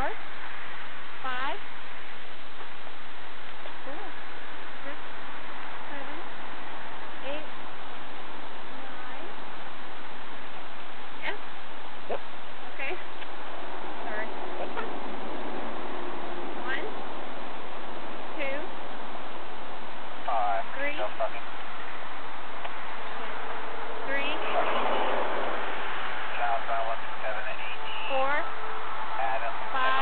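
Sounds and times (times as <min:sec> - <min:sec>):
roadside background hiss: 0:00.0 - 0:30.0
faint voices: 0:03.5 - 0:06.4, 0:07.2 - 0:07.7, 0:08.6 - 0:17.4, 0:18.3 - 0:18.8, 0:20.2 - 0:22.0, 0:22.6 - 0:30.0
faint indistinct speech: 0:20.3 - 0:21.5, 0:26.4 - 0:28.5, 0:29.2 - 0:30.0.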